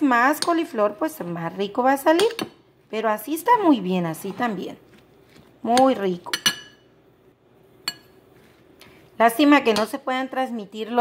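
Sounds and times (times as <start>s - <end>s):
metal spoon clinking on glass bowl: 5.8s - 6.8s, 7.8s - 8.2s.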